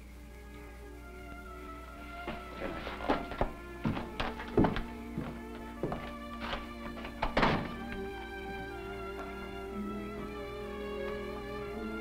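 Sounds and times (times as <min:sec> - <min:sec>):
held chord of background music: 0:00.0 - 0:12.0
boot footsteps on wooden floor: 0:02.2 - 0:08.0.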